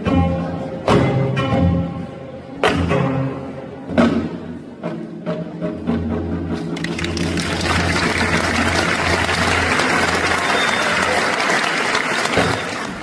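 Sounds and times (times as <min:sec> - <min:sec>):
audience applause: 0:06.8 - 0:13.0.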